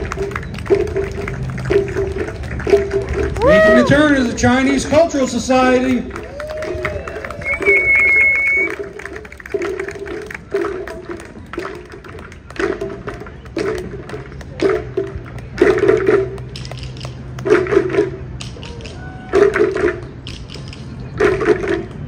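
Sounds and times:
waist drums beating: 0.0s - 6.8s, 7.4s - 22.0s
high whistle: 7.4s - 8.8s.

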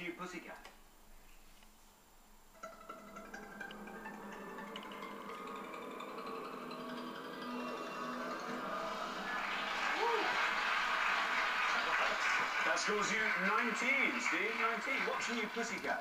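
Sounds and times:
audience applause: 7.9s - 16.0s.

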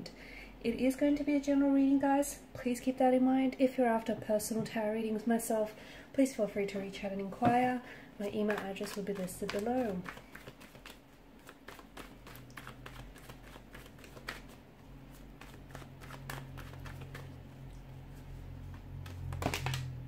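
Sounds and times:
cards being shuffled: 8.2s - 20.0s.

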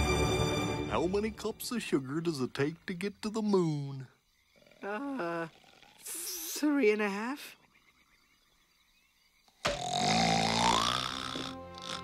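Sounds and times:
cartoon snore: 9.7s - 12.0s.

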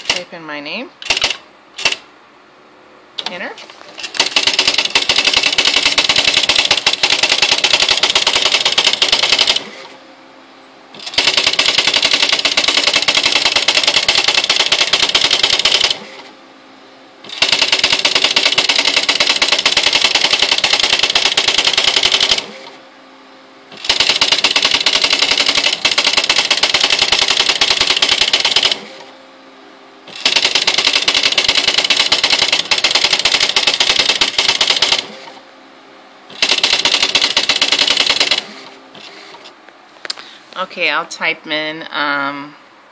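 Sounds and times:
typewriter motor hum: 0.0s - 0.2s, 1.0s - 2.0s, 3.2s - 10.0s, 11.0s - 16.3s, 17.2s - 22.8s, 23.7s - 29.1s, 30.1s - 35.4s, 36.3s - 39.5s
typewriter rapid clicking: 0.0s - 0.2s, 1.0s - 2.0s, 4.0s - 9.8s, 11.0s - 16.0s, 17.3s - 22.6s, 23.8s - 28.9s, 30.1s - 35.1s, 36.4s - 38.6s.

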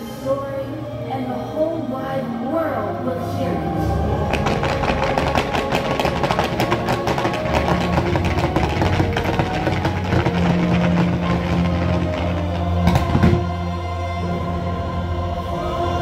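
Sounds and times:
fireworks cracking and popping: 4.2s - 13.6s.

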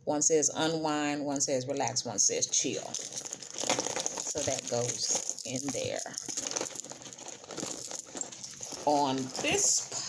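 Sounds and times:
plastic pouch rustling and clicking: 2.9s - 10.0s.

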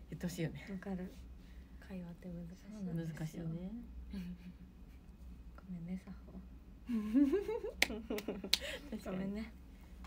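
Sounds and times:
young woman laughing: 6.9s - 8.9s.

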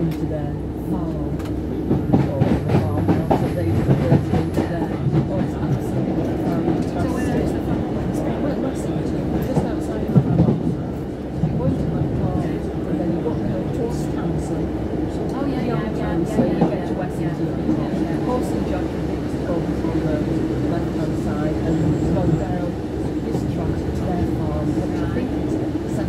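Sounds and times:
diesel engine rumble: 0.0s - 16.4s
train wheels on rails: 0.9s - 26.0s.

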